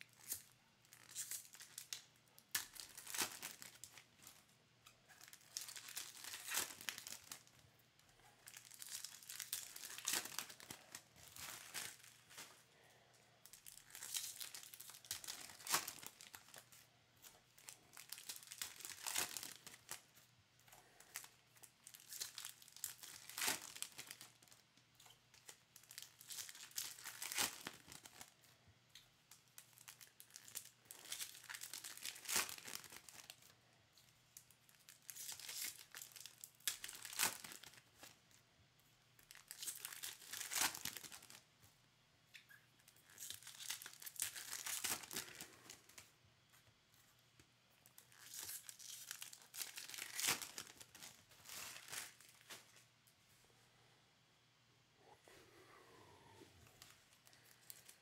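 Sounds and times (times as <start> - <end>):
foil wrappers tearing and crinkling: 0.0 - 4.4, 5.2 - 7.6, 8.4 - 12.5, 13.4 - 16.8, 17.5 - 20.2, 21.1 - 28.4, 29.6 - 33.5, 34.4 - 38.2, 39.2 - 41.4, 42.9 - 46.0, 47.8 - 52.6.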